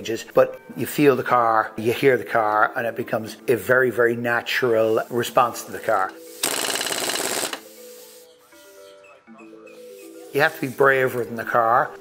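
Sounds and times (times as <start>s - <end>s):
soft background music: 0.0s - 12.0s
impact wrench rattling: 6.4s - 7.6s.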